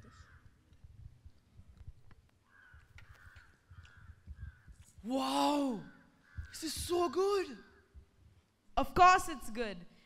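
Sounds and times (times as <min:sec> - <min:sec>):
faint bird calls: 0:00.0 - 0:00.8, 0:02.4 - 0:08.1.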